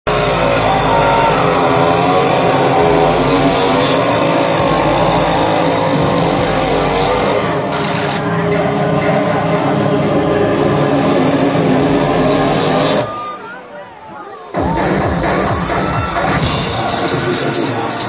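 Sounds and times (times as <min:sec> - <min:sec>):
steady wash of noise: 0:00.1 - 0:13.1
distorted industrial band playing live: 0:00.1 - 0:13.2, 0:14.5 - 0:18.0.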